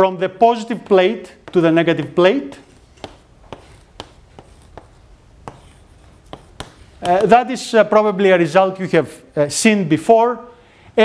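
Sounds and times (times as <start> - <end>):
chalk tapping on blackboard: 0.7 - 7.5.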